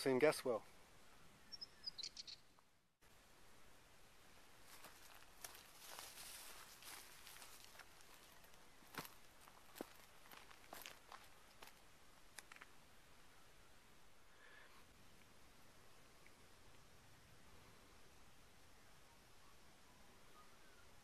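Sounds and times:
faint outdoor hiss: 0:00.0 - 0:21.0
footsteps on dry grass: 0:04.6 - 0:11.8.

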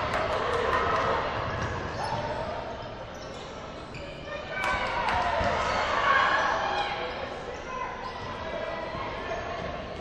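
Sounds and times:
voices echoing in gym: 0:00.0 - 0:10.0.

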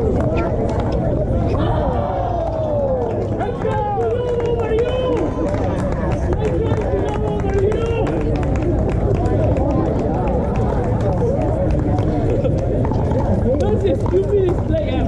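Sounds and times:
players' voices: 0:00.0 - 0:15.0
steady low rumble: 0:00.0 - 0:15.0.

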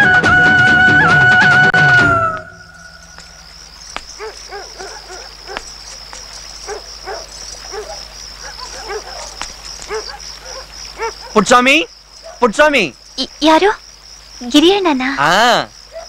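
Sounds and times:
crickets chirping: 0:00.2 - 0:16.0
dog barking: 0:04.2 - 0:05.7, 0:06.6 - 0:11.5, 0:12.2 - 0:12.5.

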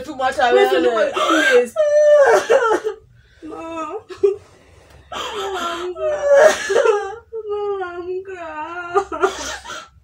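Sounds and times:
young woman crying and wailing: 0:00.6 - 0:04.4, 0:05.1 - 0:09.8.

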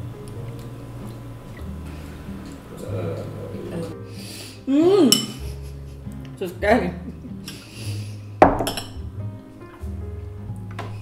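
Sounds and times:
background music with low notes: 0:00.0 - 0:11.0
metal spoon clinking on glass: 0:08.6 - 0:09.0.

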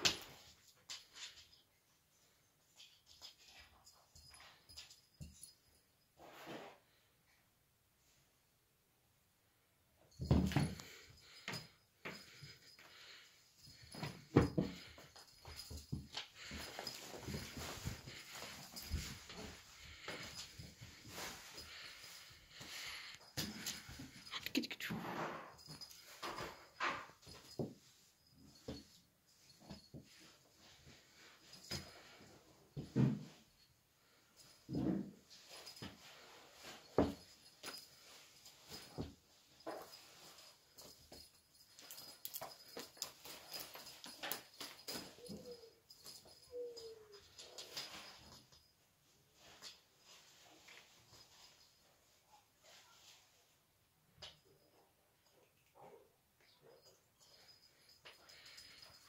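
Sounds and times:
toy rustling and tapping on floor: 0:36.8 - 0:48.7.

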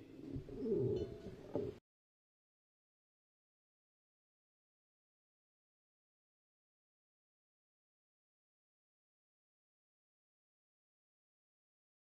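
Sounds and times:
bird cooing: 0:00.2 - 0:01.8.

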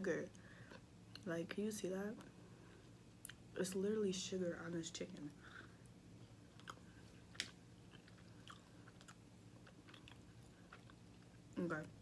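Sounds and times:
close-up chewing: 0:06.2 - 0:11.6.

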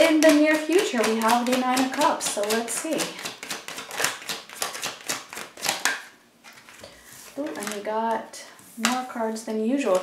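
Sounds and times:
cards being shuffled: 0:00.0 - 0:07.9, 0:08.7 - 0:09.1.

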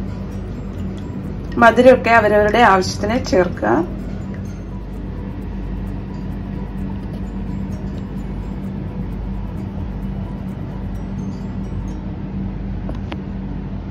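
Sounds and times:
steady low hum: 0:00.0 - 0:13.9.

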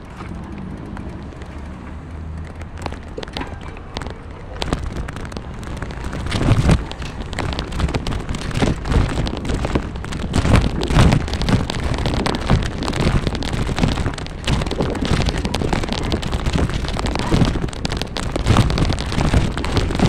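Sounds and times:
bicycle rolling and rattling: 0:00.0 - 0:20.0.

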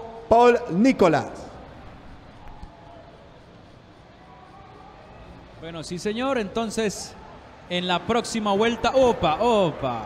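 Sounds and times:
faint broadcast background noise: 0:00.0 - 0:10.0.

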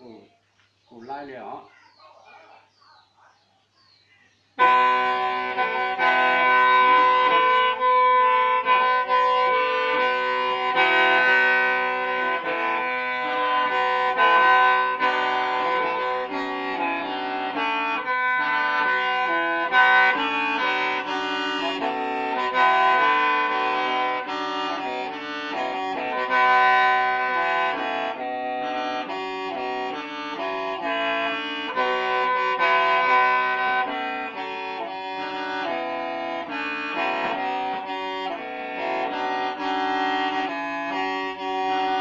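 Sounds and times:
mouth organ sustained chords: 0:04.0 - 0:42.0.

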